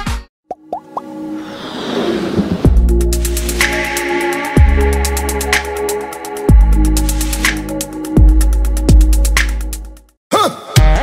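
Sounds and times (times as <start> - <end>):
whoosh: 1.3 - 4.6
dance music with heavy beat: 2.7 - 9.4.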